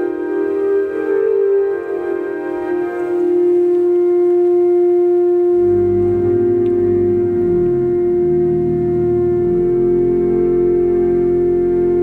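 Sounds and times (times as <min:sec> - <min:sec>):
church organ sustained note: 0:00.0 - 0:12.0
organ bass notes: 0:02.6 - 0:12.0.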